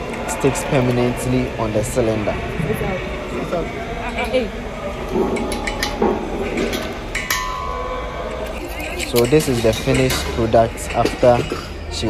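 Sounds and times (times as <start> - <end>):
steady ringing tone: 7.1 - 10.0.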